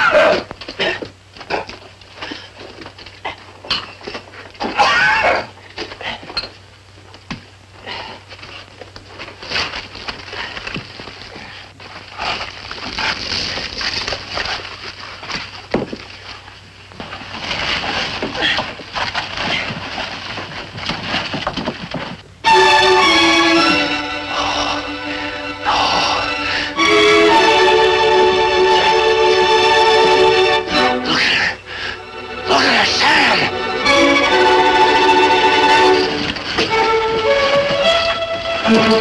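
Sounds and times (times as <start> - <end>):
loud exclamation: 4.8 - 5.5
men grunting and breathing hard: 24.2 - 26.8.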